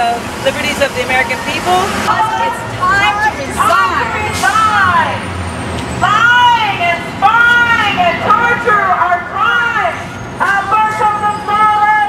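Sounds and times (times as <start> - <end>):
heavy vehicle rumbling past: 0.0 - 8.9.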